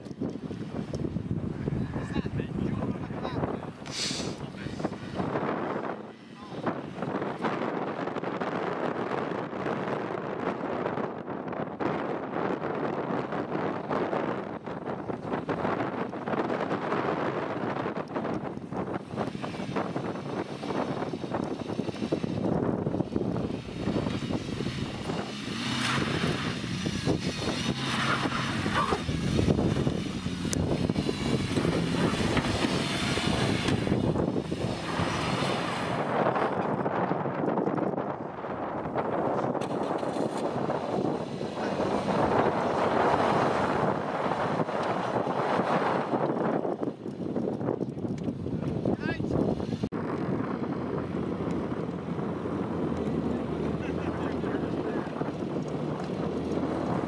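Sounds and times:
wind buffeting microphone: 0.0 - 57.0
car engine revving under load: 0.6 - 46.9, 48.4 - 57.0.

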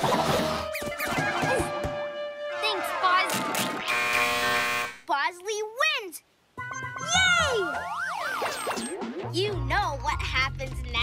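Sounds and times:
steady buzzing tone: 3.8 - 5.0
wavering cartoon voice: 7.0 - 7.8.

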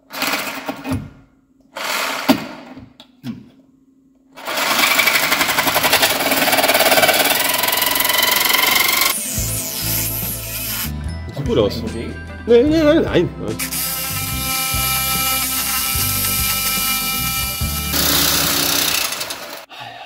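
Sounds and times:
reciprocating saw cutting metal: 4.7 - 10.9, 13.6 - 19.7
music: 8.7 - 19.2.

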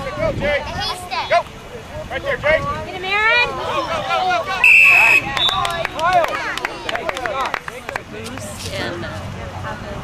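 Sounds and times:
spectators shouting: 0.0 - 7.6
referee's whistle blast: 4.6 - 5.8.

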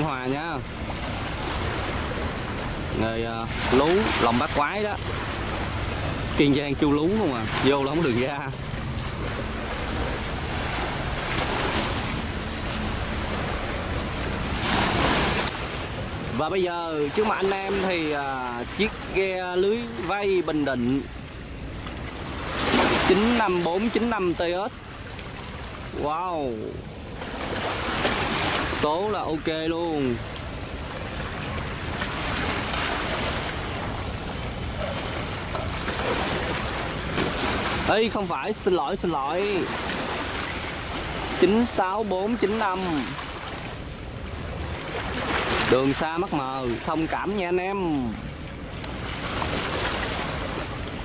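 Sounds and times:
boat engine drone: 0.0 - 51.0
choppy sea water washing: 0.0 - 51.0
rushing bow wave: 0.0 - 51.0.

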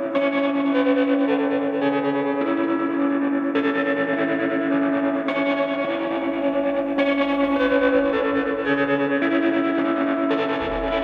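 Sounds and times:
electric guitar with echo: 0.0 - 11.0.

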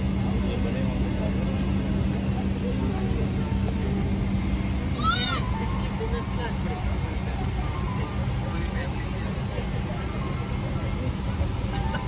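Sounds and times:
aircraft cabin air-conditioning rumble: 0.0 - 12.0
faint indistinct chatter: 0.0 - 12.0.

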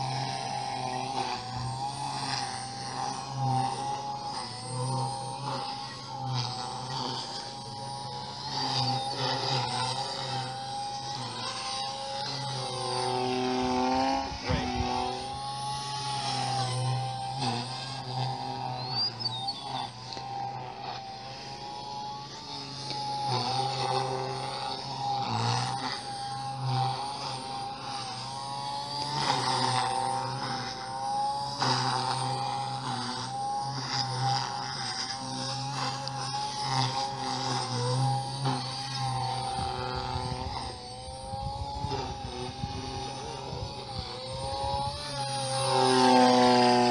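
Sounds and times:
model helicopter rotor and motor whine: 0.0 - 46.9.

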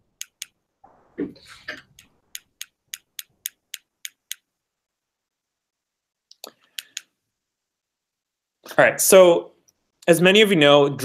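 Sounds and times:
sharp computer clicks: 0.2 - 0.6, 1.8 - 4.4, 6.6 - 7.1.

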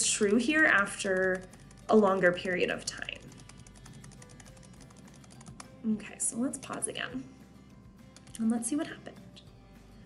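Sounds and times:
rapid computer mouse clicks: 0.2 - 5.8, 8.1 - 8.4.

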